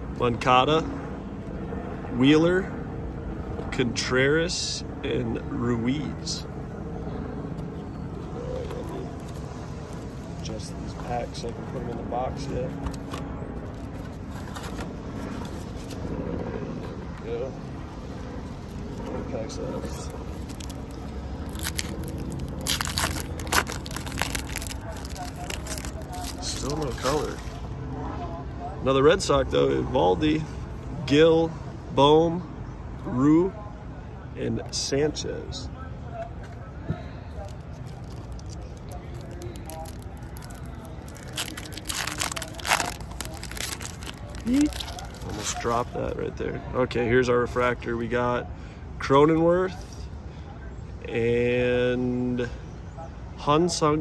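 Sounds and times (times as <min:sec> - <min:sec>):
foil card packs rustling: 0:19.6 - 0:27.6, 0:37.4 - 0:46.0.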